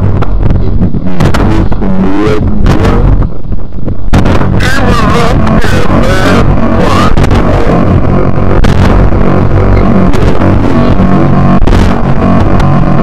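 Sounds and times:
dark industrial electronic music: 0.0 - 13.0
low drone: 0.0 - 13.0
noisy percussive hits: 0.0 - 13.0
warbling pitched tones: 0.0 - 13.0.

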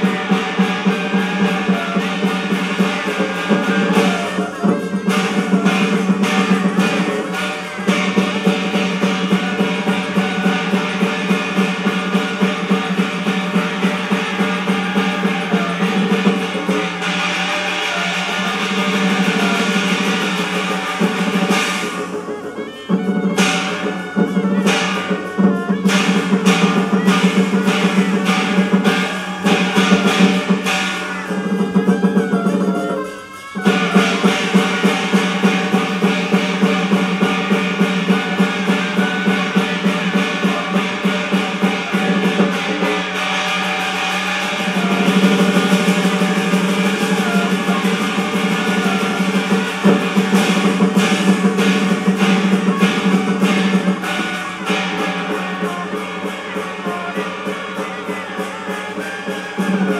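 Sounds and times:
drums and percussion: 0.0 - 59.9
opera instrumental ensemble: 0.0 - 59.9.

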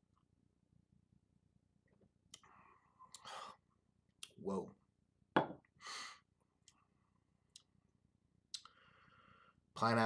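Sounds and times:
lip and tongue clicks: 8.5 - 8.8.

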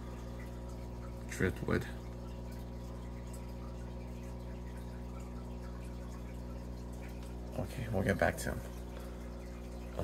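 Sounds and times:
aquarium equipment hum: 0.0 - 10.0
water bubbling: 0.0 - 10.0.

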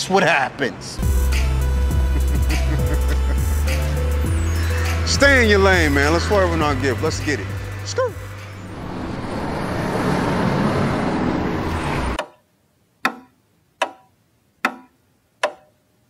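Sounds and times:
rushing noise with low hum: 1.0 - 12.2.

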